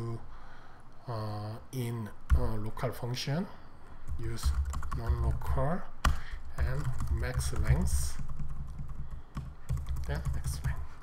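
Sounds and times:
computer keyboard typing: 4.1s - 10.8s.

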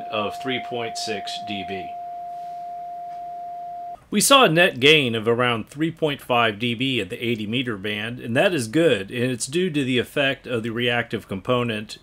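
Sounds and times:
steady radio beat tone: 0.0s - 2.0s.

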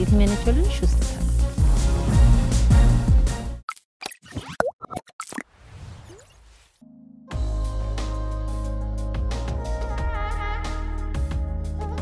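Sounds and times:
plops clicks and blips: 3.7s - 5.5s.

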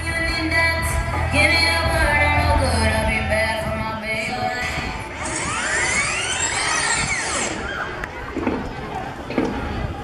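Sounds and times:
dance music: 0.0s - 7.6s.

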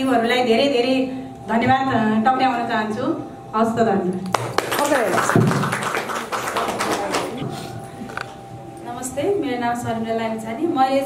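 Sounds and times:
group clapping: 4.2s - 8.3s.

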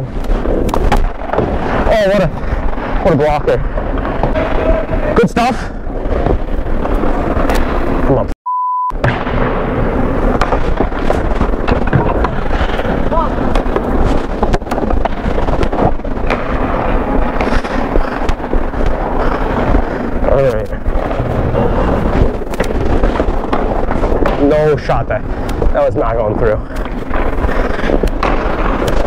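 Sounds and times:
microphone rumble and rustle: 0.0s - 8.3s, 9.0s - 29.0s
short steady beep: 8.4s - 9.0s.

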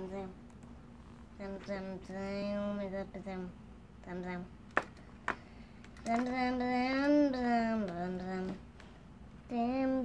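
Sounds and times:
child singing wordless tune: 1.4s - 4.5s, 6.0s - 8.7s, 9.4s - 10.0s.

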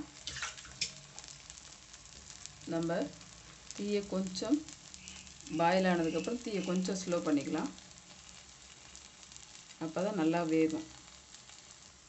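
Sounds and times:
batter sizzling on a griddle: 0.0s - 12.0s.

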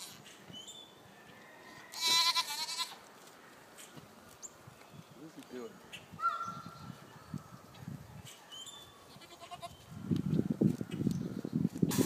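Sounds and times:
goat screaming: 1.9s - 3.0s.

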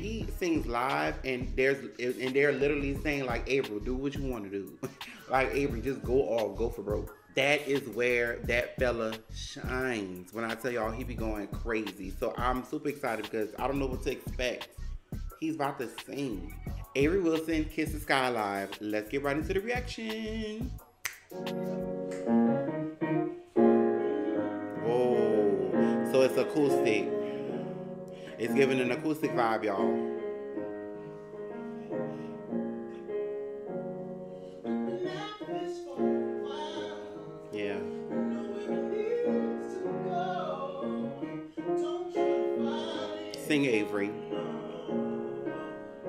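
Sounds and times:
man singing: 0.0s - 14.7s, 15.4s - 21.8s, 24.2s - 30.0s, 31.5s - 32.6s, 34.6s - 46.0s
piano playing slow chords: 21.4s - 46.0s.

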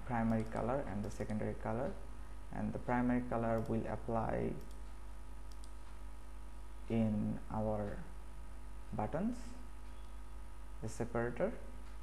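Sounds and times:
low electrical hum: 0.0s - 12.0s
computer mouse clicks: 0.2s - 1.4s, 3.5s - 3.8s, 4.6s - 6.0s.

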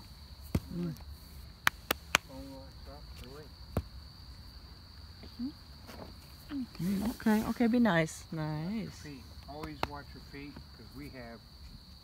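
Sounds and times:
crickets trilling: 0.0s - 12.0s
faint outdoor rumble: 0.0s - 12.0s
woman speaking: 6.5s - 9.0s.

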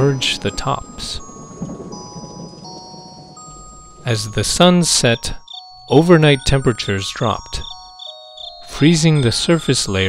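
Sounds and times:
rain: 0.0s - 5.0s
soft bell-like music: 0.0s - 10.0s
low rumble of thunder: 0.1s - 4.6s.

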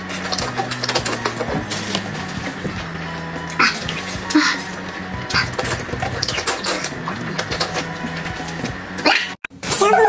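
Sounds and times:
louder music with held notes: 0.0s - 9.4s
soft background music: 0.0s - 10.0s.

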